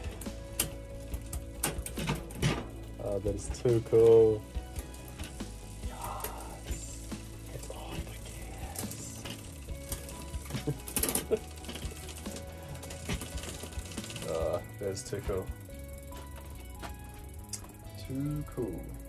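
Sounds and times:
bicycle chain running through gears: 0.0 - 19.0
mechanical ticks and clicks: 0.0 - 19.0.

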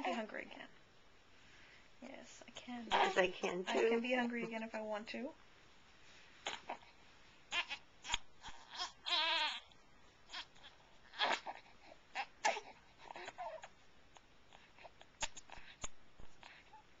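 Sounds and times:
newborn baby whimpering and crying: 2.9 - 4.1, 6.4 - 17.0.

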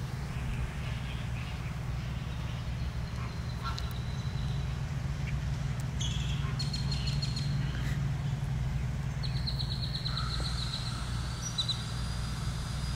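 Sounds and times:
birds chirping: 0.0 - 12.9
steady low rumble: 0.0 - 12.9
bird trill: 6.0 - 7.7, 9.2 - 12.9.

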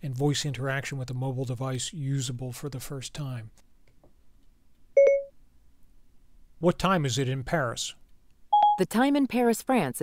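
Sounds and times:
short activation beep: 5.0 - 5.3, 8.6 - 8.8.

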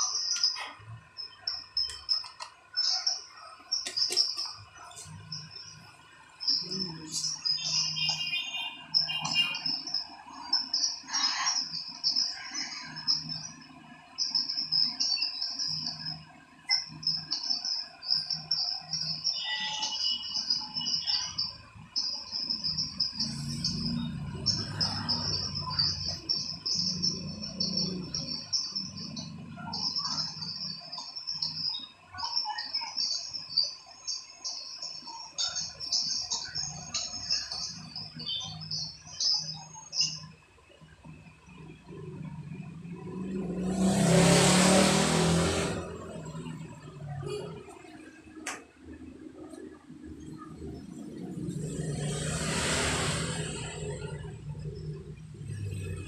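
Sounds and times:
insects trilling: 0.0 - 48.4.

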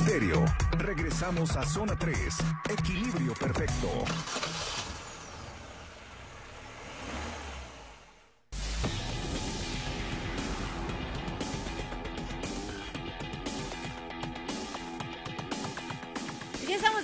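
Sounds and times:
music with steady beat: 0.0 - 4.0, 8.6 - 17.0
car engine sound effect: 3.7 - 16.3.

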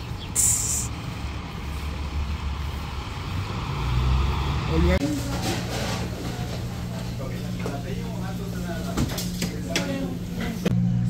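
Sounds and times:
air brakes hissing: 0.4 - 0.9
person speaking: 0.4 - 0.9.

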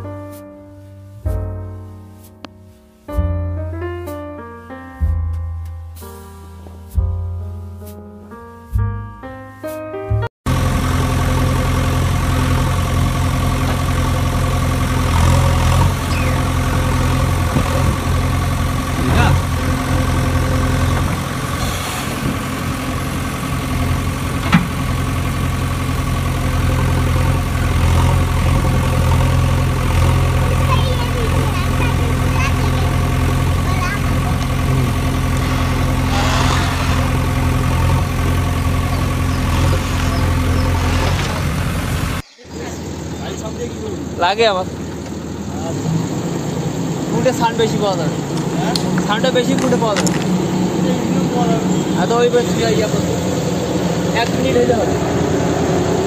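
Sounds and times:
engine idling: 10.5 - 56.0.

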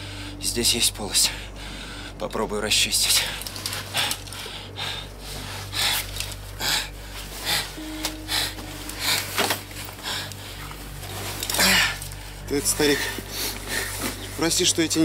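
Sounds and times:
man breathing hard: 0.0 - 0.4, 1.2 - 2.2, 3.2 - 10.7
low steady hum: 0.0 - 15.0.

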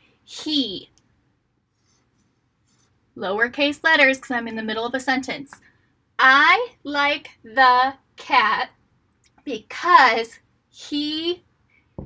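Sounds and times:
marker writing on whiteboard: 1.7 - 3.0.

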